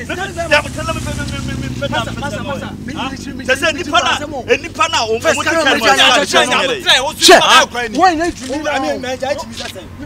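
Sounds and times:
man talking: 0.0s - 10.0s
vehicle engine drone: 0.0s - 10.0s.

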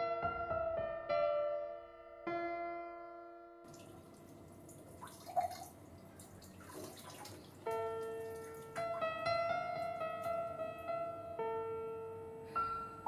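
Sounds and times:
water dripping in sink: 3.7s - 9.2s
sparse piano notes: 7.4s - 13.0s.

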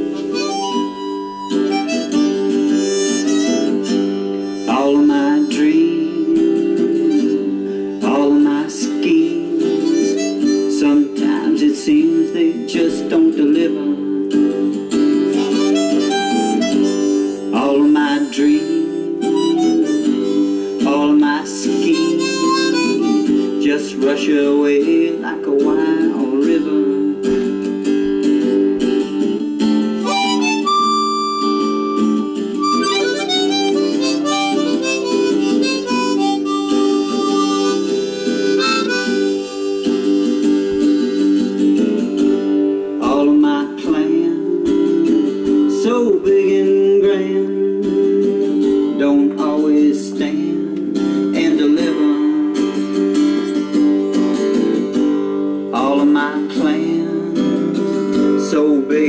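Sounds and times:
harmonica melody: 0.0s - 13.1s, 14.5s - 24.3s, 27.2s - 43.2s, 43.8s - 49.1s, 50.4s - 55.8s
person singing: 0.0s - 27.7s, 29.9s - 54.8s, 55.7s - 59.0s
acoustic guitar chords: 0.0s - 59.0s.

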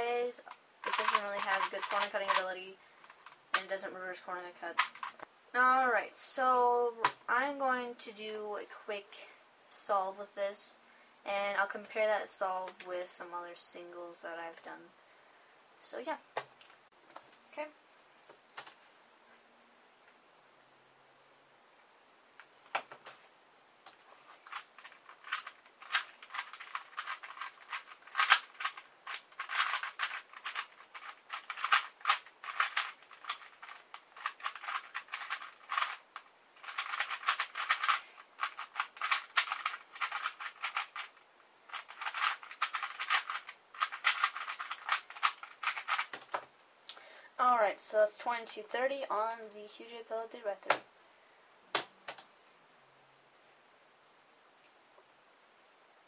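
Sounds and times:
puzzle cube clicking turns: 0.4s - 3.8s, 4.7s - 5.2s, 23.9s - 46.4s.

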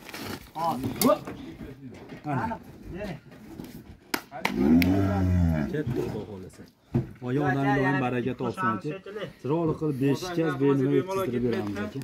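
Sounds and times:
cow mooing: 4.5s - 5.7s.

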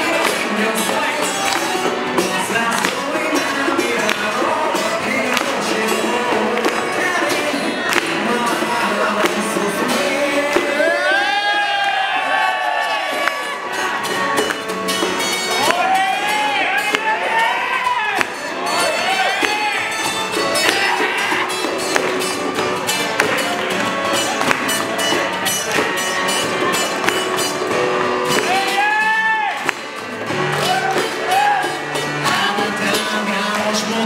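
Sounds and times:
acoustic guitar strumming: 0.0s - 11.4s, 12.7s - 34.0s
person singing: 0.0s - 11.8s, 30.6s - 34.0s
keyboard: 0.0s - 34.0s.

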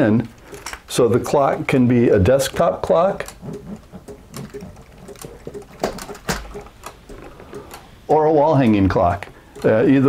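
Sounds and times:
clock ticking: 0.0s - 10.0s
plastic clock clicks and knocks: 0.5s - 7.9s, 8.6s - 10.0s.

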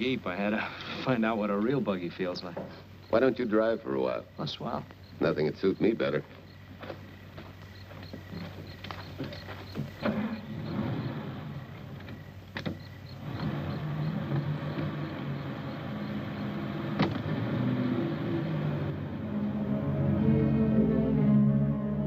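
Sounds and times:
car engine running: 5.0s - 20.2s
car doors shutting: 9.2s - 19.0s
music: 19.3s - 22.0s.

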